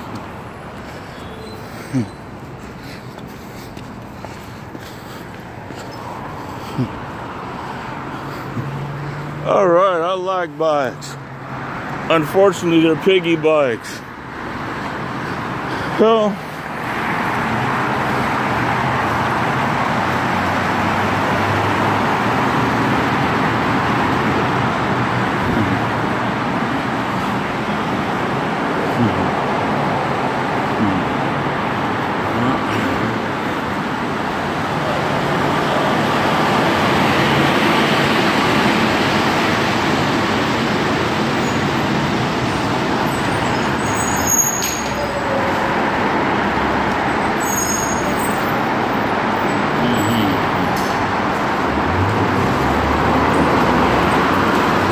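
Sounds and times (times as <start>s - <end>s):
traffic on wet road: 0.0s - 54.9s.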